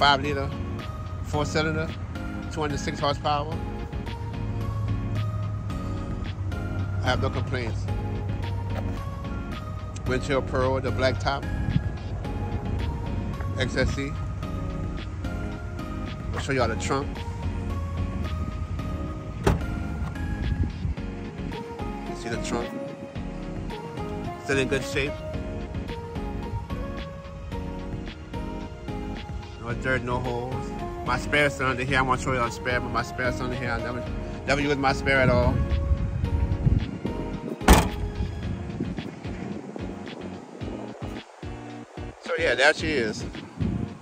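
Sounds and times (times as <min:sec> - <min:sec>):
background music: 0:00.0 - 0:44.0
car trunk lid unlatching: 0:19.4 - 0:20.2, 0:37.5 - 0:38.2.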